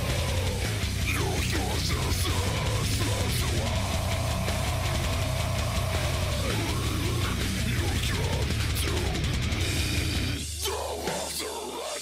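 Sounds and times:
heavy metal instruments: 0.0 - 12.0
man screaming metal vocals: 0.0 - 12.0.

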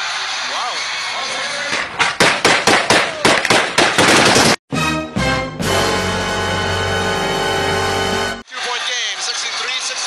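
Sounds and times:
rapid gunshots: 2.0 - 4.6
music: 4.7 - 8.4.

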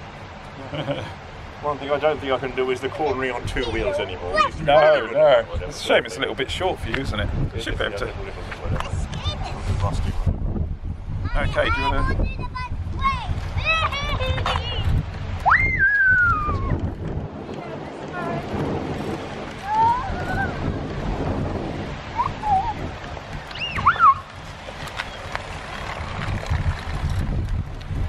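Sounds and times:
wind buffeting microphone: 0.0 - 28.0
high-pitched calls: 23.5 - 24.3.

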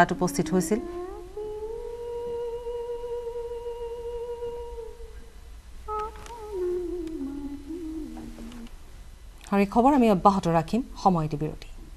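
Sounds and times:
woman humming a slow melody: 0.0 - 5.3, 5.9 - 8.8.

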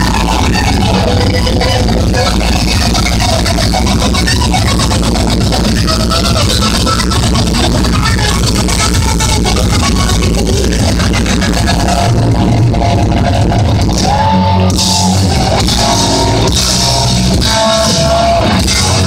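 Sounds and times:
distorted electric guitar: 0.0 - 19.0
drum kit: 0.0 - 19.0
electric bass: 0.0 - 19.0.

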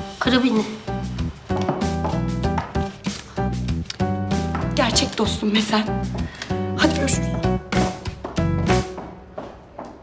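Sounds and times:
sustained background music: 0.0 - 9.7.

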